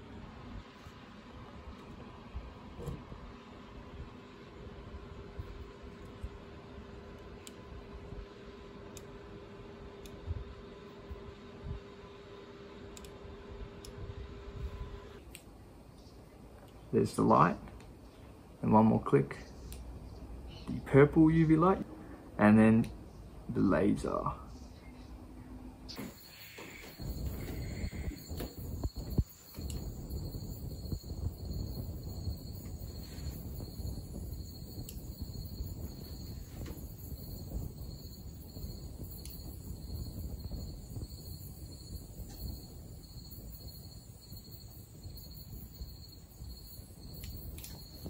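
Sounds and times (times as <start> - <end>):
insects chirring: 25.9 - 48.0.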